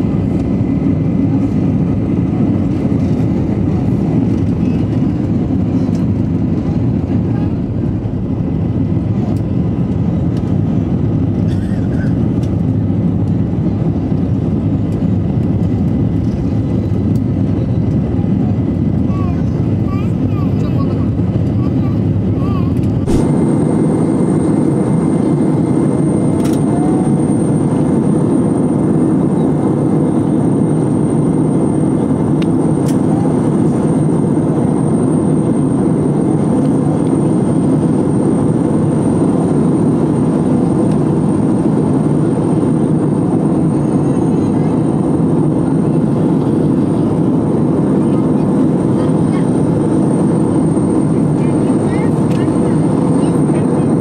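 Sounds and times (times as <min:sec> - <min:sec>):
jet engine drone in cabin: 0:00.0 - 0:54.0.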